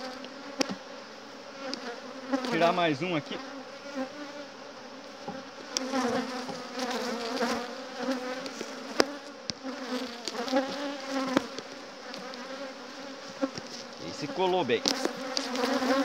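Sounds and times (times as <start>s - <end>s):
honeybees buzzing: 0.0s - 16.0s.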